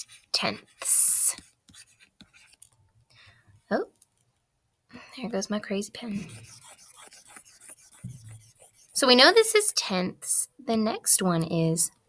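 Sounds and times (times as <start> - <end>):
pen ticks and scrapes: 0.0 - 2.8, 6.3 - 9.0.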